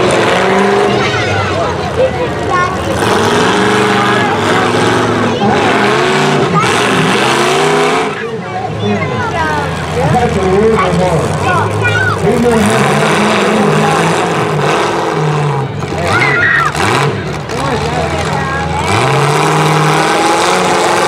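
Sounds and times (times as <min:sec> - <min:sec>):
crowd shouting: 0:00.0 - 0:10.2, 0:10.8 - 0:21.0
car engines revving: 0:00.0 - 0:21.0.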